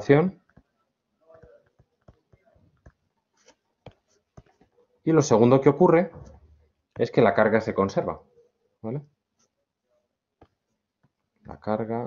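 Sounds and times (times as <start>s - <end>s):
stylus scratching on pen tablet: 1.3s - 5.0s.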